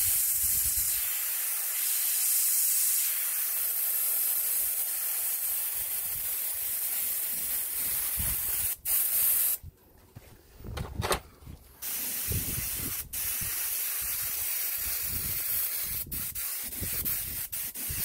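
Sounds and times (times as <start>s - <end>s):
airbrush hissing: 0.0s - 9.6s, 11.8s - 18.0s.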